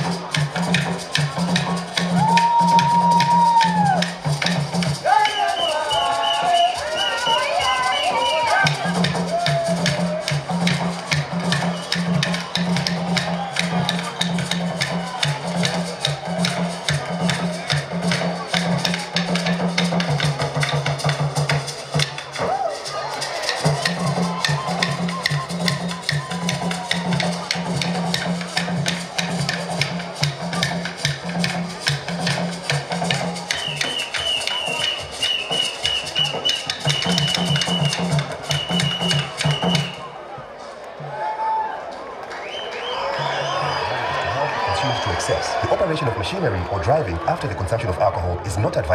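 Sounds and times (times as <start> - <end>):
hand drums: 0.0 - 40.1.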